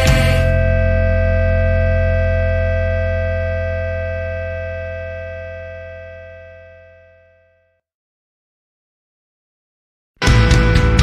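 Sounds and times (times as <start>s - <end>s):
guitars and bass ringing chord: 0.0s - 7.6s, 10.2s - 11.0s.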